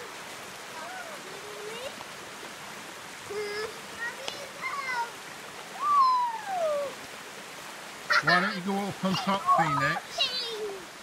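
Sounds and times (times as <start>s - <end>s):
river water rushing over rocks: 0.0s - 11.0s.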